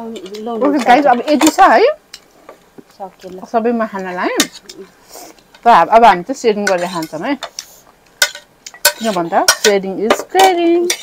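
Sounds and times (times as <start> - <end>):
forks clinking on ceramic plates: 6.7 - 11.0.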